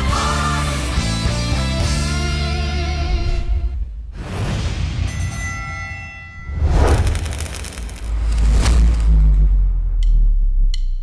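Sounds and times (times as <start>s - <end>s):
swoosh: 6.4s - 9.3s.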